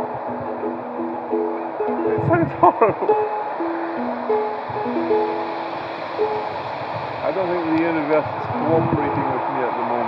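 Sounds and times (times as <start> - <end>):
out of tune ukulele picking: 0.0 - 7.7.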